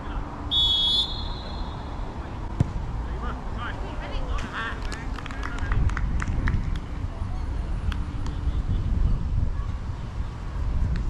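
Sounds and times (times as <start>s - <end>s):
wind on microphone: 5.6s - 11.0s.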